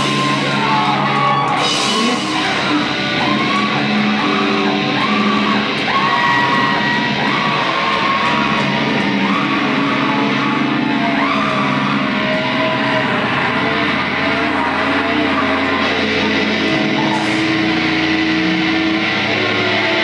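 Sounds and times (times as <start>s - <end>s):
live rock band playing: 0.0s - 20.0s
sliding electric guitar notes: 0.0s - 20.0s.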